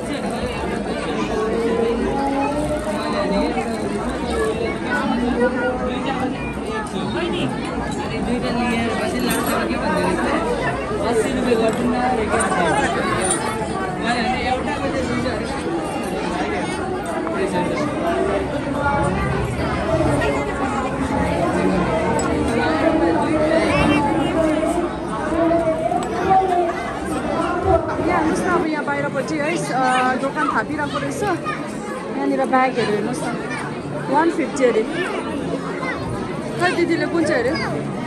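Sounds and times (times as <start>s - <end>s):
babble of overlapping voices: 0.0s - 38.0s
indistinct chatter: 0.0s - 38.0s.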